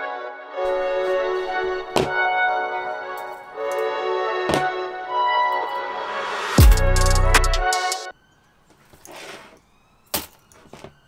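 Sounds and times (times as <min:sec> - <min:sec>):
wire coil rustling across mat: 0:00.7 - 0:03.9, 0:08.6 - 0:11.0.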